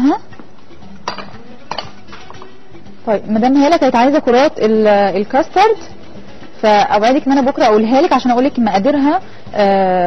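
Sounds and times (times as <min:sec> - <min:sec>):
dishes and utensils being cleared: 0:01.0 - 0:02.4.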